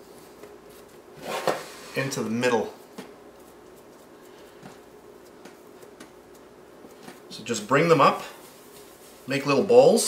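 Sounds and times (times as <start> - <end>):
hands handling soft dough: 0.0 - 10.0.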